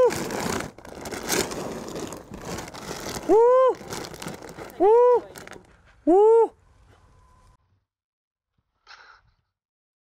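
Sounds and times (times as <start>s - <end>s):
feed being poured: 0.0s - 5.6s
feed sack rustling: 0.0s - 5.7s.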